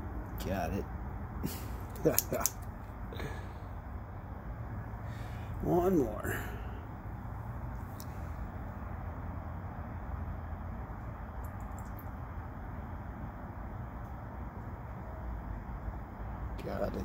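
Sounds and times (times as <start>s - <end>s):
low rumble and hiss: 0.0s - 17.0s.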